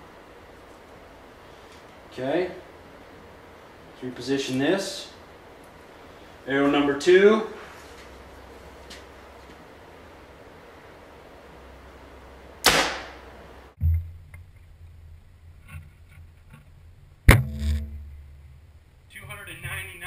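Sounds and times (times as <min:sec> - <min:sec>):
low hum: 0:07.7 - 0:20.0.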